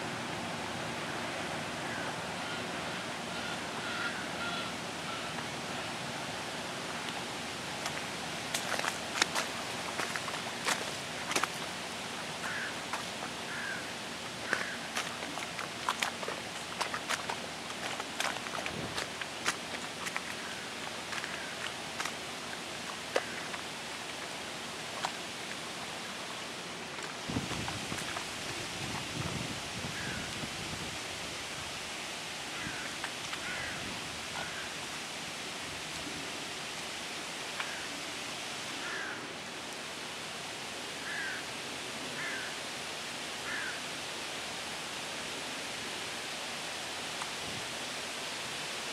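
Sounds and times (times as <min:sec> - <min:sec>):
steady hiss: 0:00.0 - 0:48.9.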